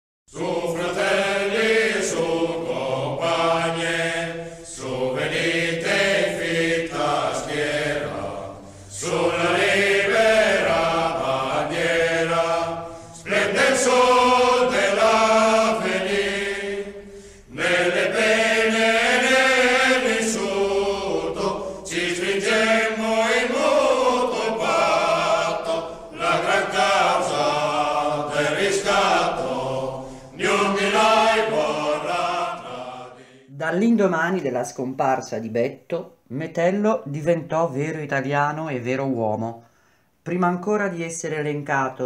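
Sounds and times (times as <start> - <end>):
voices singing chant-like phrases: 0.3 - 33.6.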